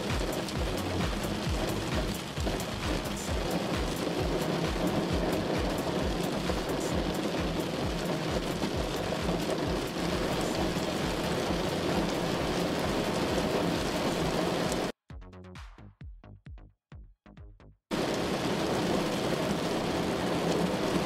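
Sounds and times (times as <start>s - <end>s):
heavy rain on a car: 0.0s - 14.9s, 17.9s - 21.0s
background music with low beat: 0.0s - 17.9s.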